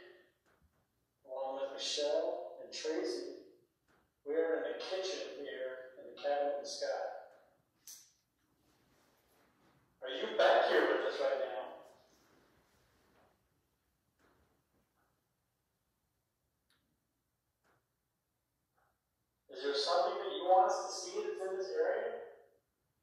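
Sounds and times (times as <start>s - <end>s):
person speaking: 1.3s - 3.3s, 4.3s - 7.1s, 10.0s - 11.7s, 19.5s - 22.2s.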